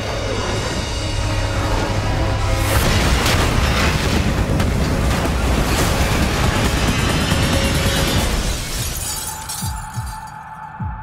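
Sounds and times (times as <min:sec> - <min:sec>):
trailer music: 0:00.0 - 0:11.0
debris shattering and breaking: 0:02.6 - 0:10.4.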